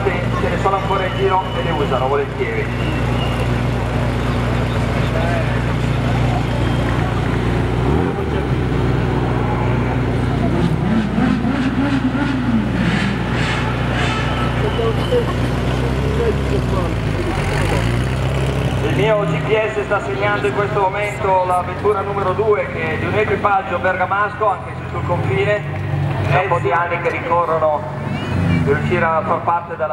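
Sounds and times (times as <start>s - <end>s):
crowd voices: 0.0s - 29.9s
sports car engines revving: 0.0s - 29.9s.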